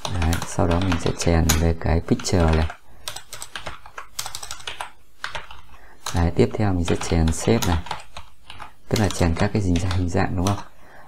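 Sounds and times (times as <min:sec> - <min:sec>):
computer keyboard typing: 0:00.0 - 0:10.7.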